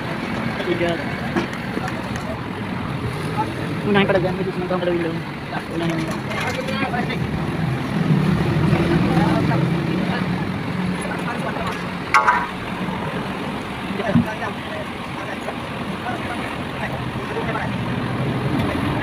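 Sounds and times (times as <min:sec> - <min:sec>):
truck engine running: 0:00.0 - 0:19.0
sharp metallic clank: 0:12.1 - 0:12.7.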